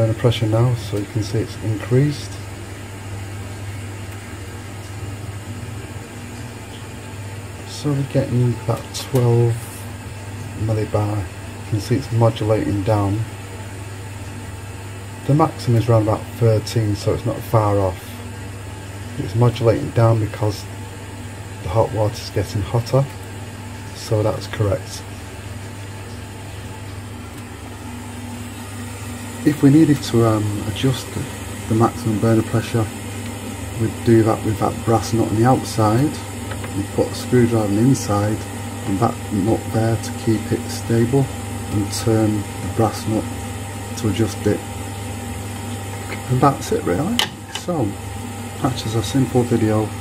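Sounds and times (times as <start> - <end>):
boiler burner humming: 0.0 - 50.0.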